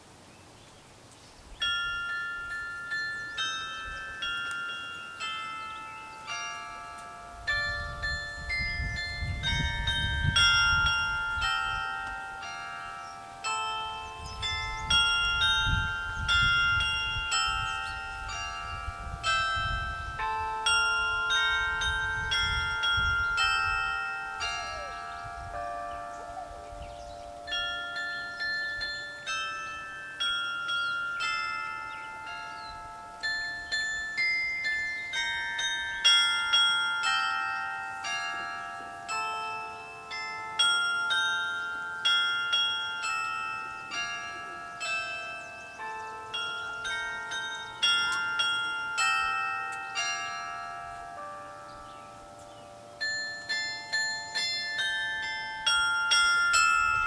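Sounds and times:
carillon bells melody: 1.5 - 57.0.

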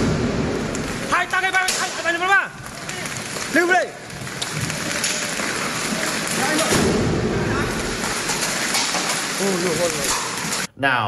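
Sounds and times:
hail and heavy rain pelting: 0.6 - 10.7.

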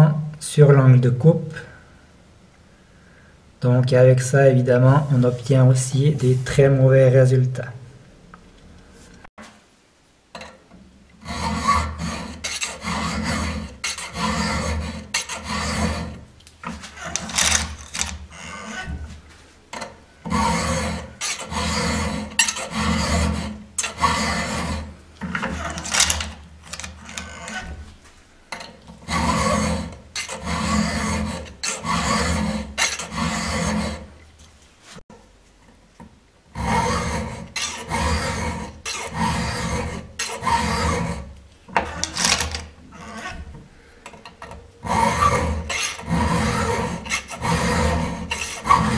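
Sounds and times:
file rasping on steel: 11.2 - 19.0, 20.2 - 27.8, 29.0 - 34.1, 36.5 - 43.5, 44.8 - 48.9.

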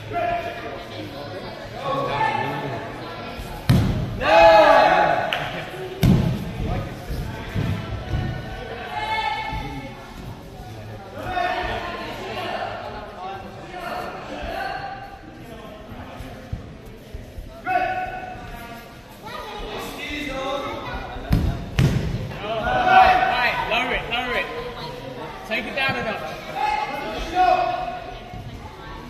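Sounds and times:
indistinct voices in a hall: 0.0 - 29.0.

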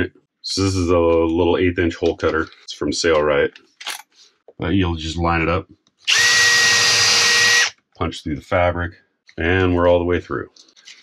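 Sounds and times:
cordless drill whining: 6.1 - 7.7.

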